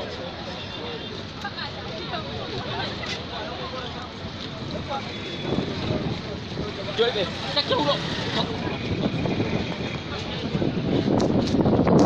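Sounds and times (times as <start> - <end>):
traffic running past: 0.0 - 12.0.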